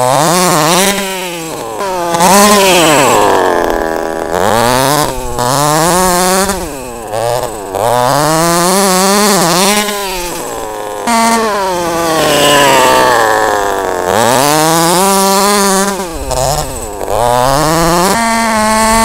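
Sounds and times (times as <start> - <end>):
two-stroke engine revving: 0.0 - 19.0.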